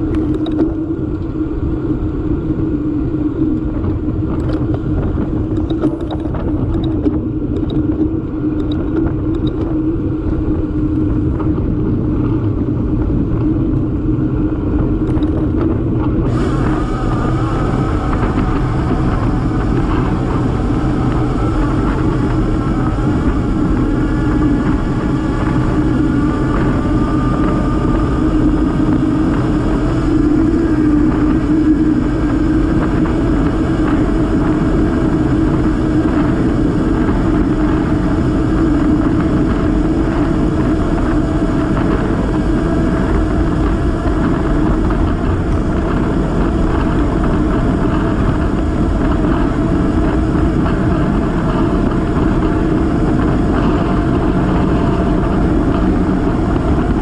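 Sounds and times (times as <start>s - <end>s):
droning hum: 0.0s - 57.0s
wind and road noise: 0.0s - 57.0s.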